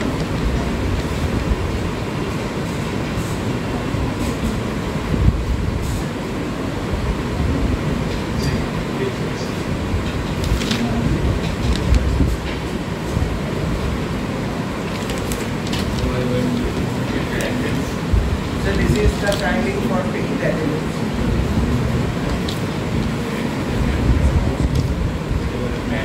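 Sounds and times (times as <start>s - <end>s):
low rumbling room noise: 0.0s - 26.0s.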